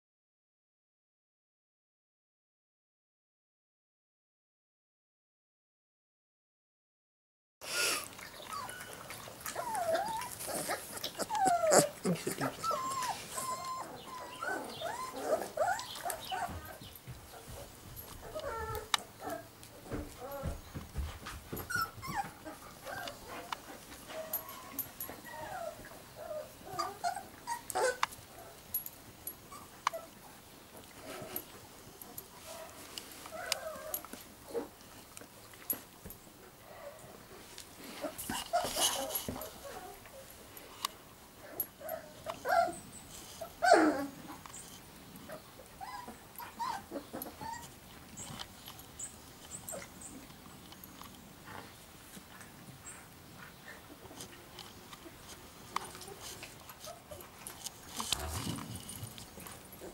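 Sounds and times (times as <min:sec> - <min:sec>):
puppies whimpering and squeaking: 0:07.8 - 0:20.8, 0:21.5 - 0:28.1, 0:28.8 - 0:30.2, 0:33.2 - 0:34.7, 0:38.0 - 0:40.3, 0:41.4 - 0:51.6
knocks and scuffs: 0:19.8 - 0:22.5.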